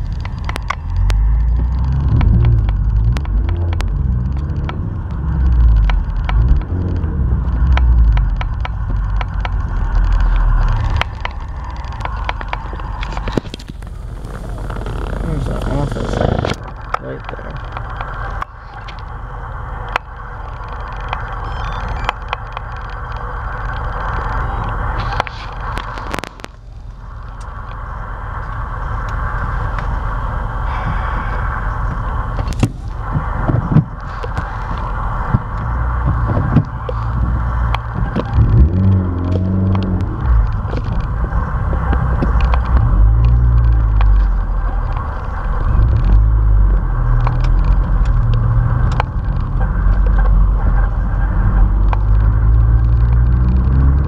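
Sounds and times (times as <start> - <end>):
low irregular rumbling: 0.0 - 54.0
vehicle road noise: 0.0 - 54.0.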